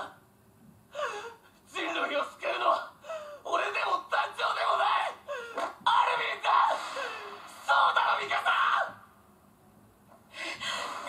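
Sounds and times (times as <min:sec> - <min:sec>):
person pleading: 0:01.7 - 0:09.0
person speaking: 0:01.7 - 0:09.0.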